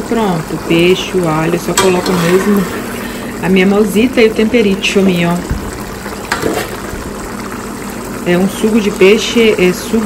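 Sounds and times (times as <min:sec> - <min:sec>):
sauce bubbling in a pan: 0:00.0 - 0:10.0.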